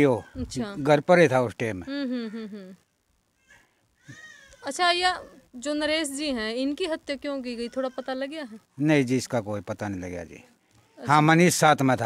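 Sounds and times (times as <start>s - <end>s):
person speaking: 0.0s - 2.6s.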